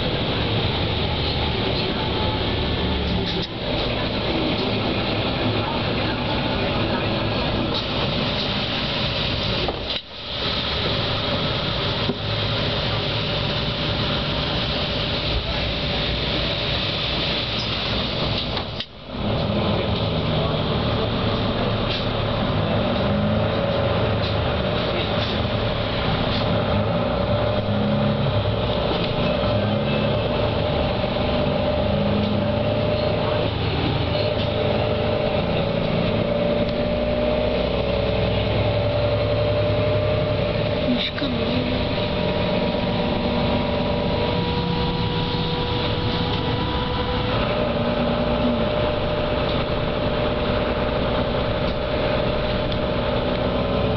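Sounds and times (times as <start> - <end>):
bus running noise: 0.0 - 53.9.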